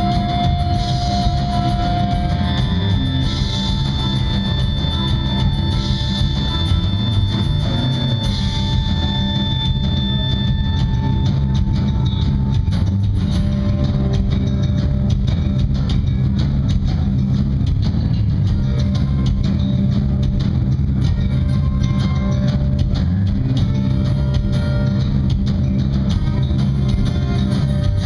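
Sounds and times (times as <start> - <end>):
bass guitar: 0.0 - 28.0
drum kit: 0.0 - 28.0
guitars: 0.0 - 28.0.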